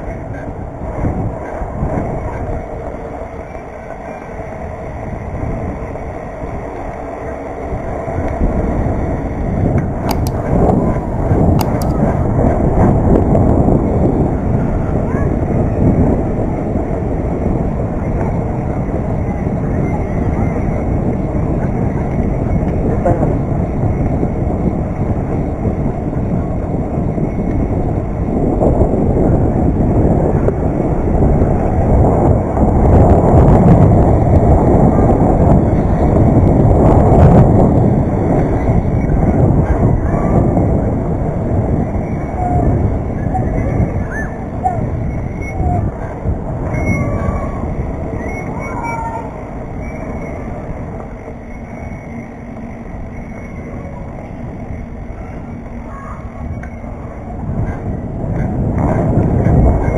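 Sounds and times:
bike tyre rumble on pavement: 0:00.0 - 0:59.9
wind rushing over microphone: 0:00.0 - 0:59.9.

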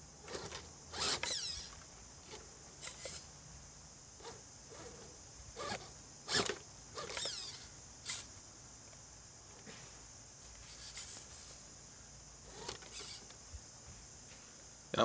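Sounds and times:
steady high-pitched hiss: 0:00.0 - 0:15.0
electric motor whirring: 0:00.2 - 0:03.3, 0:04.2 - 0:08.3, 0:10.6 - 0:11.4, 0:12.4 - 0:13.4.

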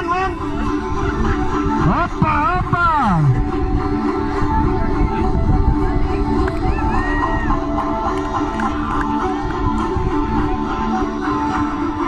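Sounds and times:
music with held notes: 0:00.0 - 0:12.0
voice calling in warbling line: 0:01.8 - 0:03.4.

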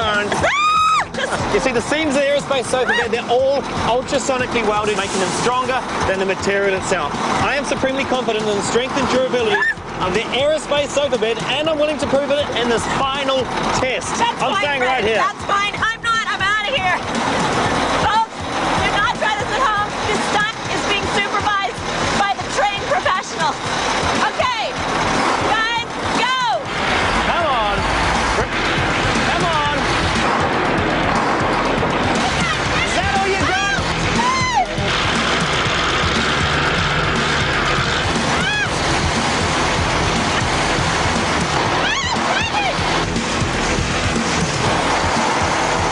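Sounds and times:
people shouting and laughing: 0:00.0 - 0:03.7, 0:09.2 - 0:10.3, 0:32.1 - 0:36.4, 0:37.4 - 0:43.2
background music: 0:00.0 - 0:45.9
diesel truck engine running: 0:00.0 - 0:45.9.

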